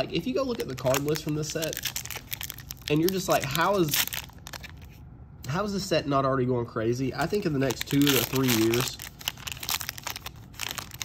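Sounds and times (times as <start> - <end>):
foil wrapper crinkling and tearing: 0.2 - 5.0, 7.2 - 11.0.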